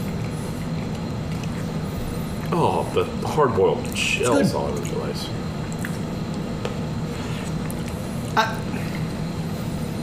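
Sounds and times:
air conditioning hum: 0.0 - 10.0.

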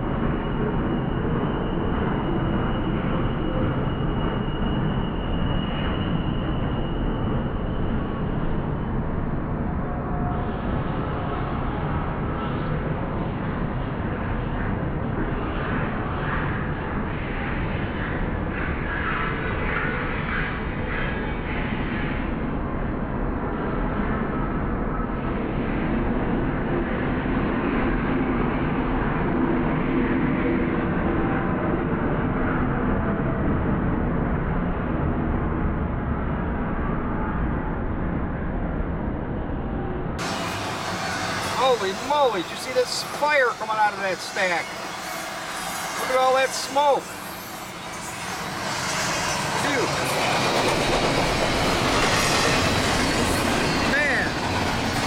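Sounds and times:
diesel locomotives passing: 39.6 - 55.0.

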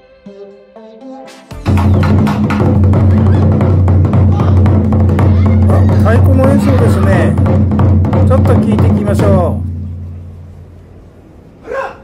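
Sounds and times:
large taiko drums ringing: 1.6 - 11.4
drummer shouting call: 1.7 - 9.8.

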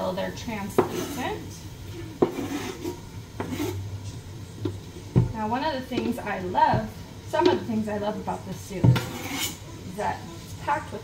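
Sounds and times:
board tapping on pot: 0.7 - 1.2, 2.2 - 3.8, 8.8 - 9.2
onions scraped off cutting board: 0.8 - 1.4, 2.2 - 3.8, 8.9 - 9.7.

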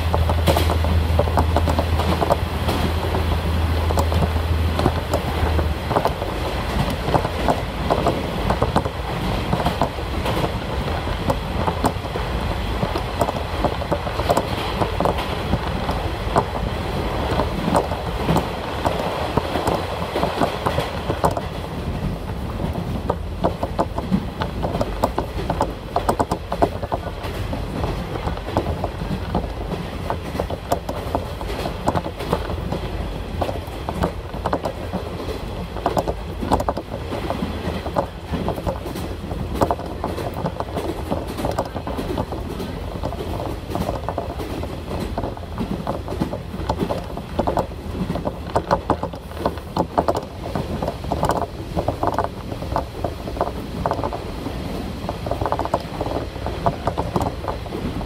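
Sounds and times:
train cabin rumble: 0.0 - 58.0
wheels clattering over rail joints: 0.0 - 58.0.

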